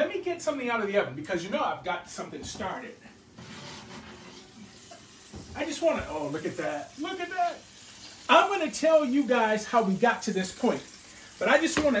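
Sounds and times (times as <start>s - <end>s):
steak sizzling in a skillet: 4.4s - 12.0s.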